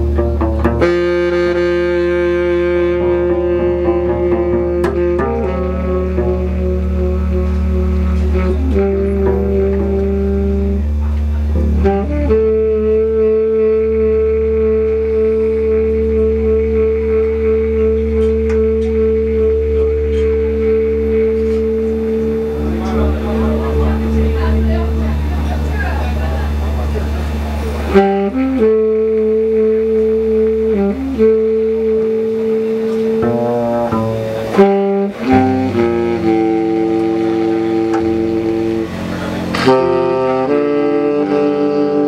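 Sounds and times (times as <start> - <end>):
double bass: 0.0 - 42.0
jazz band droning note: 0.0 - 42.0
saxophone: 0.0 - 42.0.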